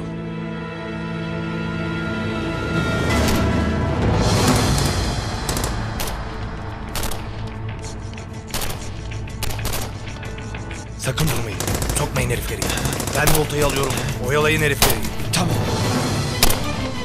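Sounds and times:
tense dramatic film score: 0.0s - 17.0s
sharp gunshots: 4.5s - 7.6s, 11.2s - 15.5s, 16.2s - 17.0s.

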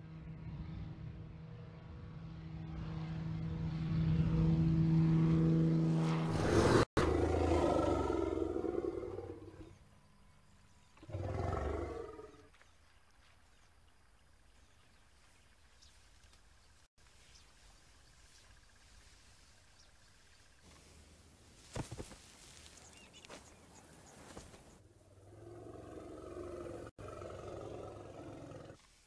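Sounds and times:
propeller aircraft engine drone: 0.0s - 10.9s
faint outdoor ambience: 0.0s - 29.0s.

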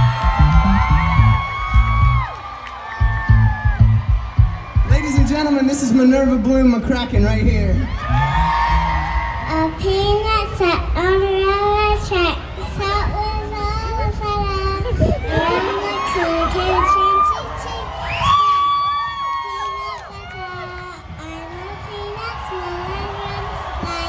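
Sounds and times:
crowd cheering: 0.0s - 10.3s, 15.1s - 24.0s
girl singing into a microphone: 9.4s - 24.0s.

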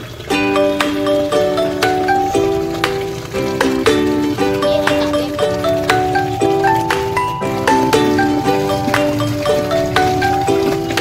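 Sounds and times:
light instrumental music: 0.3s - 11.0s.

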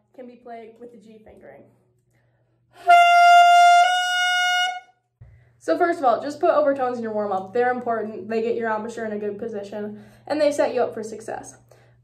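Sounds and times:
saxophone holding high note: 2.8s - 4.9s.

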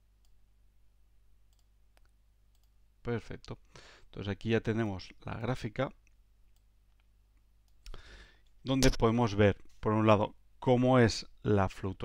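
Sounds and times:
computer mouse clicks: 1.5s - 2.7s.

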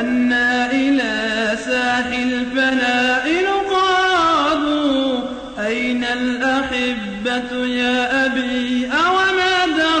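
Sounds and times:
person chanting unaccompanied: 0.0s - 10.0s.

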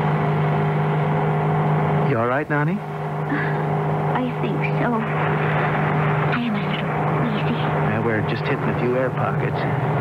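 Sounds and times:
small plane engine droning: 0.0s - 10.0s.

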